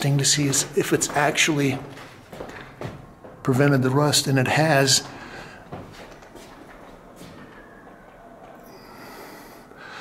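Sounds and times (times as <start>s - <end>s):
breath of air on microphone: 8.7s - 10.0s.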